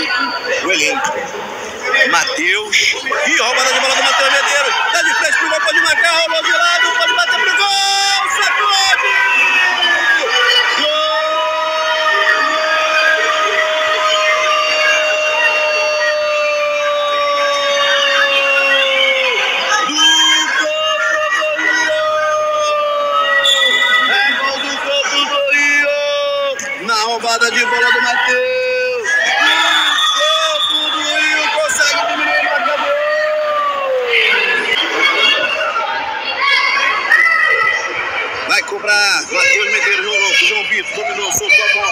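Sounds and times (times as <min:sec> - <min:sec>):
spectators shouting: 0:00.0 - 0:41.9.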